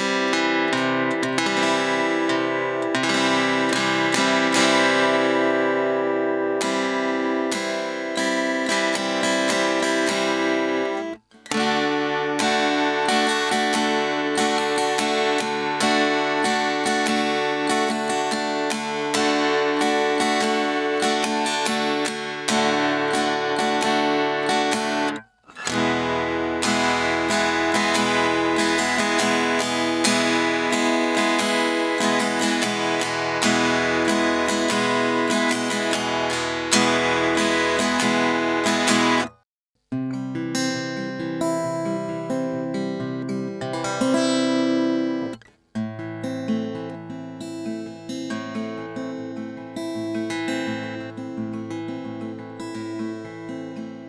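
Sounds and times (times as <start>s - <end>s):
acoustic guitar strummed chords: 0.0s - 54.0s.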